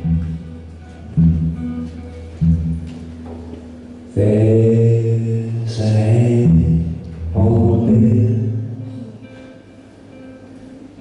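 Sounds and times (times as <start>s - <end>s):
man singing held wordless notes: 4.1s - 9.2s.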